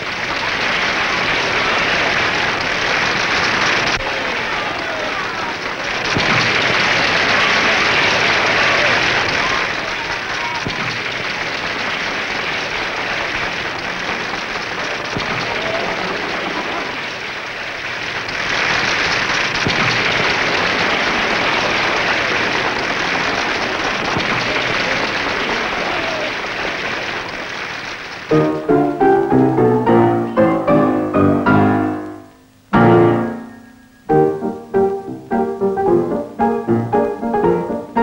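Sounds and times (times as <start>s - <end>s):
audience applauding: 0.0s - 32.0s.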